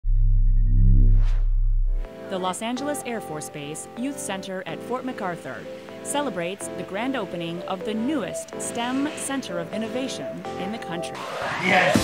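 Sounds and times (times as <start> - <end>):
deep bass drone: 0.0 - 2.1.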